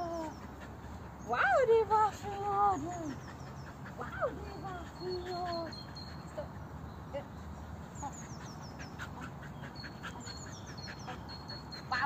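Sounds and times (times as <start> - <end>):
birds calling: 0.0 - 12.0.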